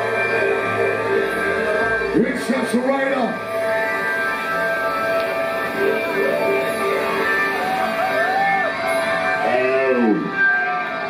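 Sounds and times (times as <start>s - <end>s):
drum and bass music: 0.0s - 11.0s.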